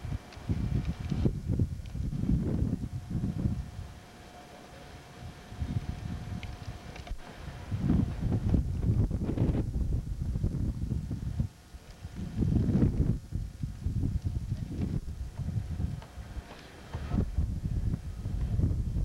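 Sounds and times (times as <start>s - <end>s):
wind buffeting microphone: 0.0s - 4.1s, 5.1s - 19.0s.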